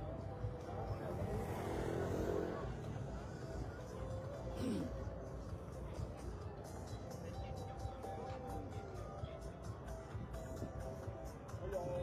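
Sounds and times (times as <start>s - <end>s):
street crowd chatter: 0.0s - 12.0s
motorbike engine passing by: 0.9s - 3.6s.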